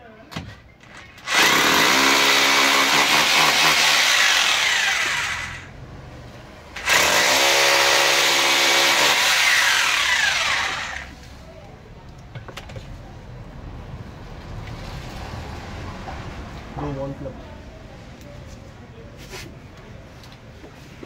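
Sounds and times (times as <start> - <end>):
power drill boring into wall: 1.2 - 5.7, 6.8 - 11.1.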